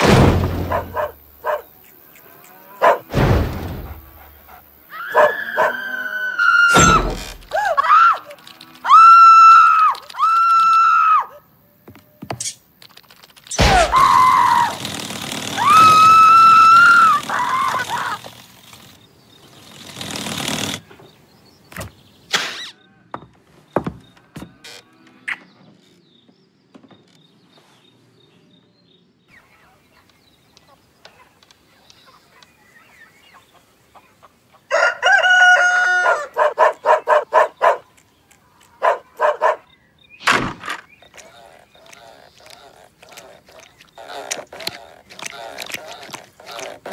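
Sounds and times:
short squeaks: 2.2s - 10.8s, 22.3s - 22.9s, 23.7s - 26.1s, 40.2s - 46.9s
rooster crowing: 4.9s - 7.0s, 34.7s - 37.0s
high-pitched cartoon squeal: 4.9s - 11.4s, 13.6s - 14.8s, 15.5s - 18.3s
sharp clicks: 9.5s - 10.9s, 12.3s - 20.9s, 40.2s - 46.9s.

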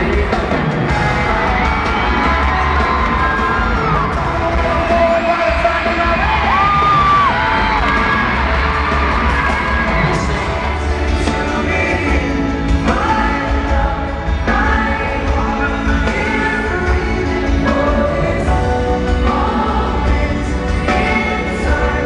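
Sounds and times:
crowd screaming and cheering: 0.0s - 22.0s.

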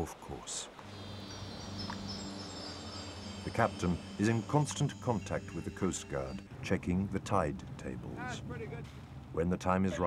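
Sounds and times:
faint high tones: 0.8s - 6.6s
low pitched drone: 0.8s - 6.6s.

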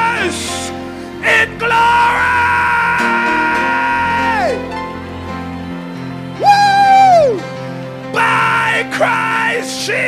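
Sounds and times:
sustained keyboard chords: 0.0s - 10.0s
man's high wordless cry: 1.2s - 4.6s.

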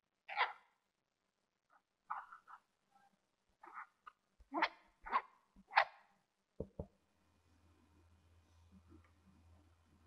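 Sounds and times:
dog barking: 0.3s - 0.7s, 4.6s - 6.0s
dull thumps: 6.6s - 7.0s.

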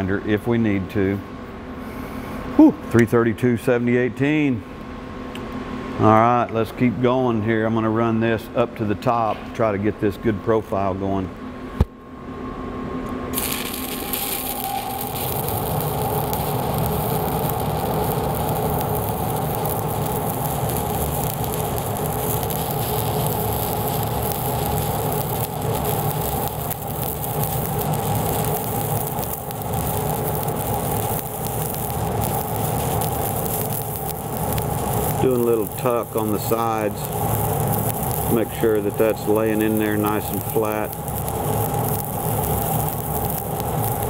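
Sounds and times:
welding arc crackling: 13.3s - 44.0s.

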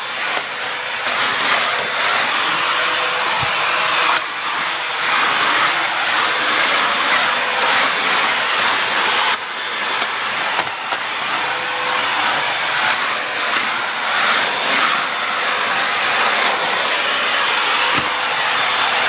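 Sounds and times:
stick vacuum running: 0.0s - 19.0s.

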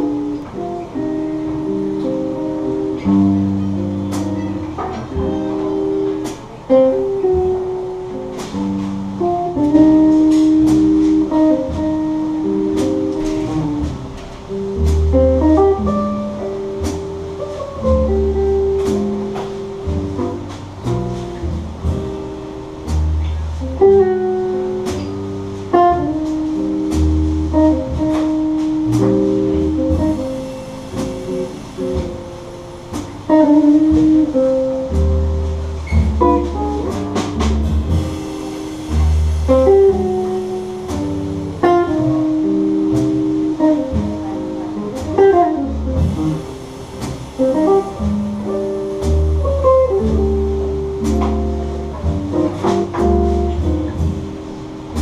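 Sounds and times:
drums: 0.0s - 55.0s
electric guitar melody: 0.0s - 55.0s
upright bass: 0.0s - 55.0s.

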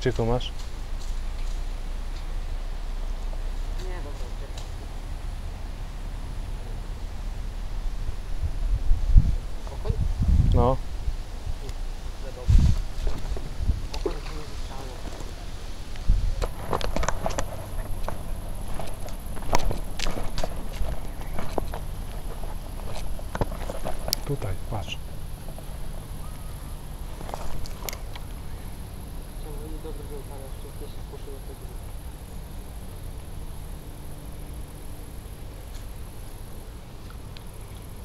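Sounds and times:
footsteps on dry ground and grass: 12.5s - 26.2s, 27.0s - 28.4s
camera handling knocks and rustles: 16.4s - 24.2s.

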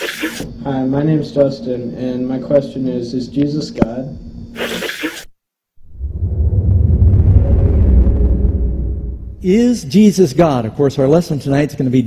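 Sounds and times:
deep rumbling transition effect: 5.8s - 9.8s.

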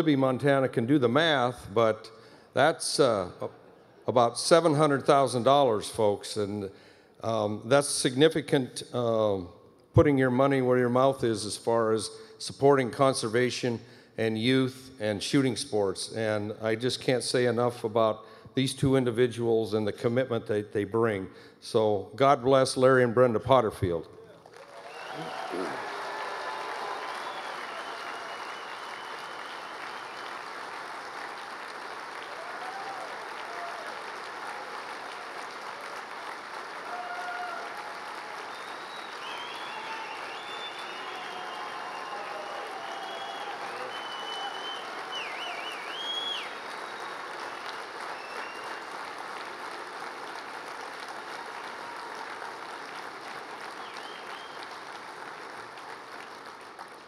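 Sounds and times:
audience applauding: 24.4s - 57.0s.

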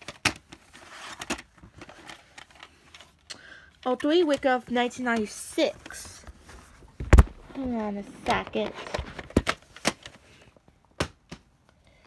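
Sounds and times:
plastic cassette case rustling: 0.0s - 10.4s.

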